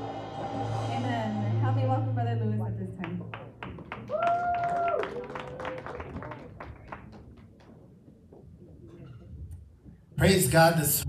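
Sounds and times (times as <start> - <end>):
congregation hand clapping: 3.1 - 7.8.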